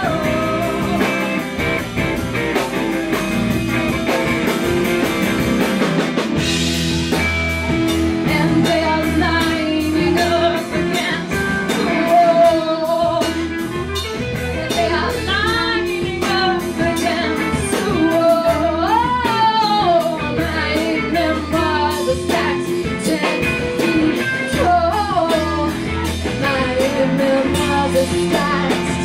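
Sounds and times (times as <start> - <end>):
woman singing: 0.0 - 1.4, 8.1 - 29.0
bass guitar: 0.0 - 29.0
drum kit beat: 0.0 - 29.0
electric guitars: 0.0 - 29.0.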